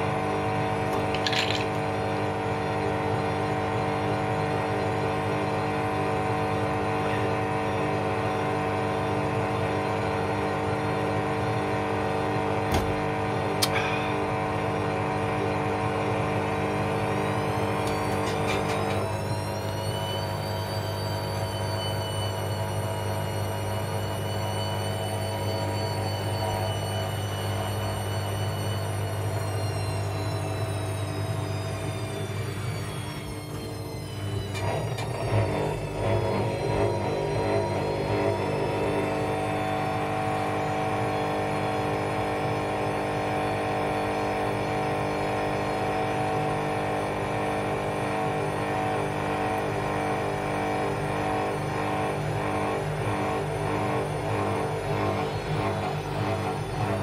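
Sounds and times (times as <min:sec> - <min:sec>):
washing machine spin whine: 0:00.0 - 0:57.0.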